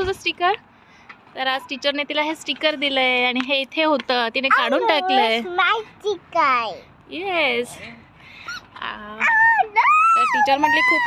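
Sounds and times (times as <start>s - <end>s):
girl whining: 9.2s - 11.0s.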